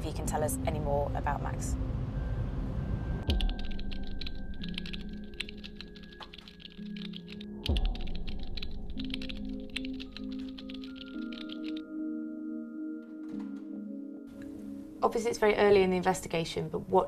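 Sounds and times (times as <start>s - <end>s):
ambient music chords: 0.3s - 15.3s
keyboard typing clicks: 3.3s - 11.8s.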